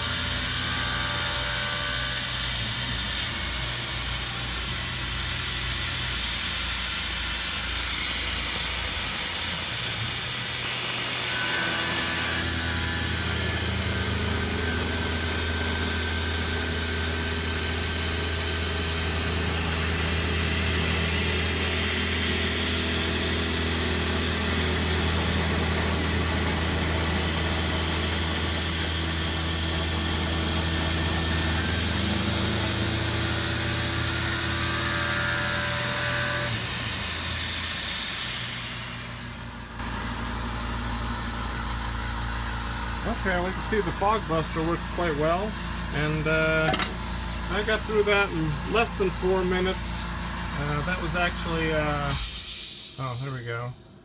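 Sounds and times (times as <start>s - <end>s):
mill spindle cutting steel: 0.0s - 39.6s, 41.1s - 52.1s
coolant mister hissing: 43.0s - 53.8s.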